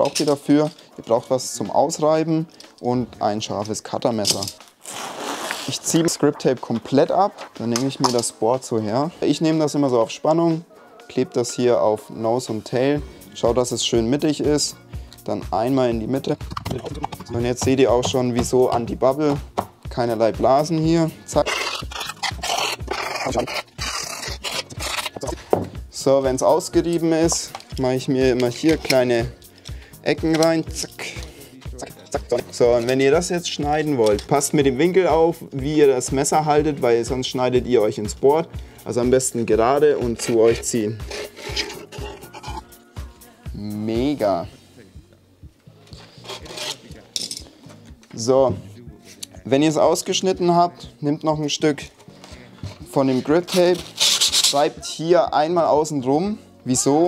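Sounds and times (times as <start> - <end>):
hand tool rasping grip tape: 21.3 - 25.6, 28.4 - 29.1, 40.1 - 42.7, 45.9 - 46.9, 52.7 - 54.7.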